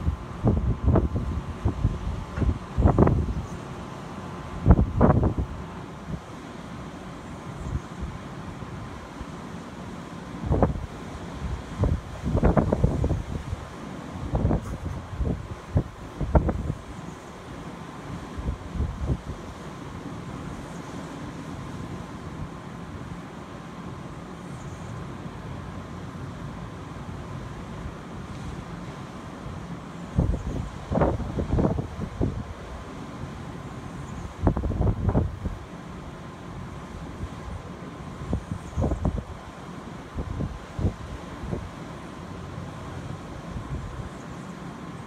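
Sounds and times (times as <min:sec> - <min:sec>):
wind buffeting microphone: 0:00.0 - 0:03.6, 0:04.5 - 0:06.3, 0:10.4 - 0:17.0, 0:30.1 - 0:32.6, 0:34.2 - 0:35.7, 0:38.2 - 0:39.4.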